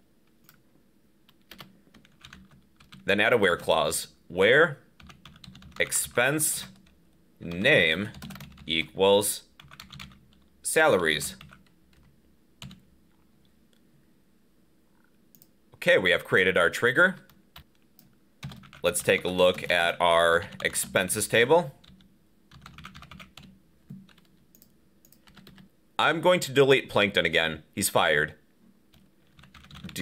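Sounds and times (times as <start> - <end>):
computer keyboard keystrokes: 1.3 - 3.0, 5.0 - 5.8, 8.1 - 8.7, 9.6 - 10.4, 17.6 - 18.8, 21.8 - 25.7, 29.0 - 30.0.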